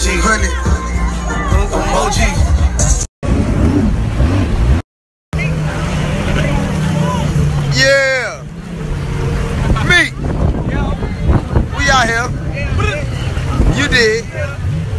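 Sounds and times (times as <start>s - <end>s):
jet ski engines humming: 0.0s - 4.8s, 5.4s - 14.9s.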